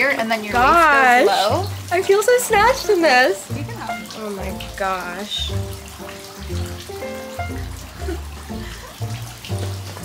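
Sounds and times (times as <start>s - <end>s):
melody over bass line: 0.5s - 1.7s.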